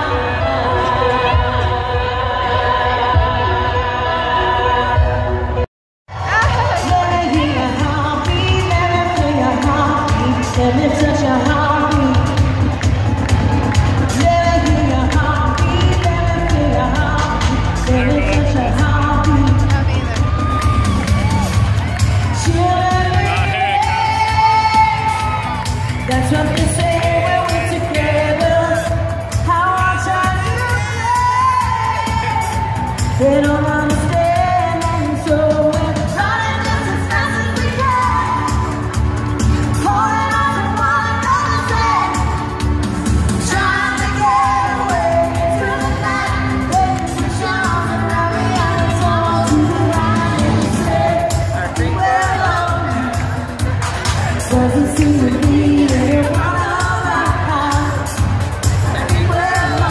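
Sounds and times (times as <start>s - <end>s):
woman singing lead vocals: 0.0s - 59.9s.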